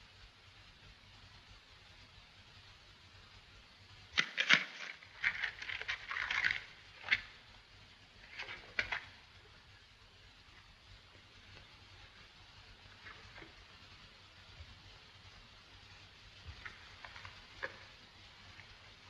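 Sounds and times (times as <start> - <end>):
clicks of objects handled: 4.2 - 7.3.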